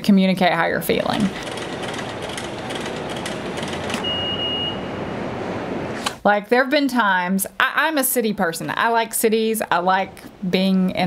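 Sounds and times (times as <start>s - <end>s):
subway station rushing noise: 1.4s - 6.0s
high steady tone: 3.9s - 5.8s.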